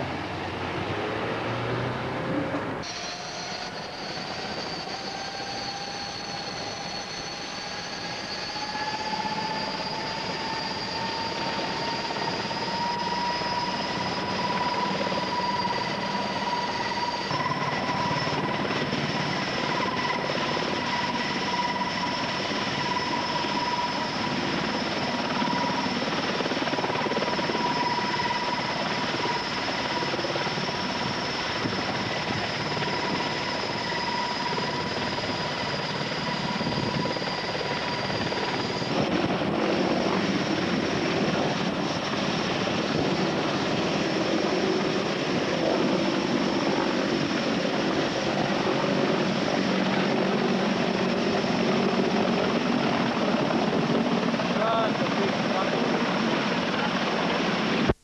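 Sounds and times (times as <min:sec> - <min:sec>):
helicopter flying past: 0:00.0 - 0:57.9
helicopter rotor and turbines: 0:00.0 - 0:58.0
high whine: 0:02.5 - 0:52.7.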